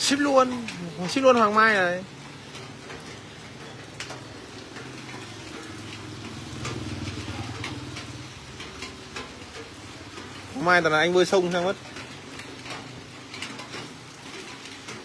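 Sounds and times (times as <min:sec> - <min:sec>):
charcoal crackling: 0:00.0 - 0:15.0.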